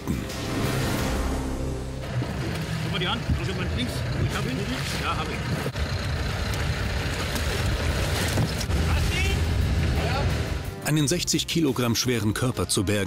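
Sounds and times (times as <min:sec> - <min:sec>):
water noise: 0:00.0 - 0:10.5
boat engine at low revs: 0:00.0 - 0:10.7
wind: 0:02.0 - 0:10.5.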